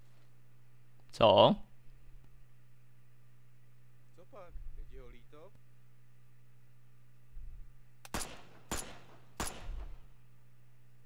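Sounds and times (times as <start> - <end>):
pistol shots: 8.0 - 10.2.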